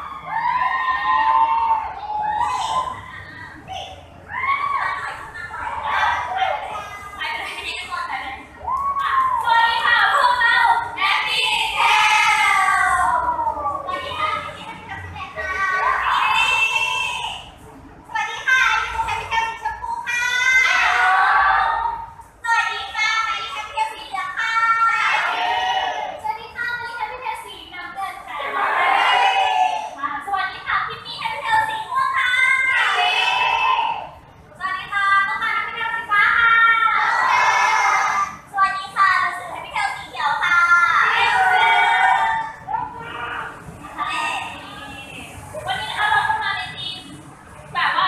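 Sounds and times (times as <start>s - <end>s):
women talking through speakers: 6.3s - 11.7s, 43.8s - 48.0s.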